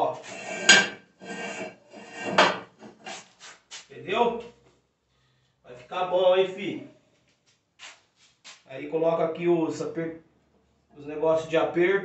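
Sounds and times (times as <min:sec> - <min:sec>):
steel parts scraping: 0:00.0 - 0:03.6.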